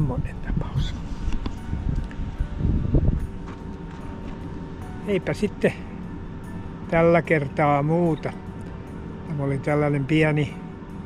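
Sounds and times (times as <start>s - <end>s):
wind rumble on microphone: 0.0s - 4.6s
faint steady hum: 0.0s - 11.0s
camera handling noise: 1.2s - 1.6s.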